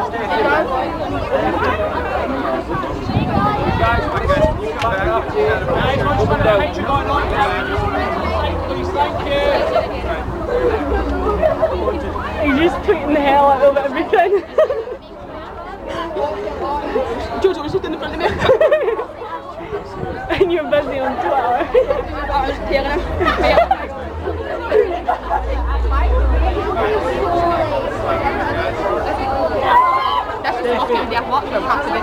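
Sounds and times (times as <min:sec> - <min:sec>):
crowd chattering: 0:00.0 - 0:32.0
low rumble: 0:21.9 - 0:28.1.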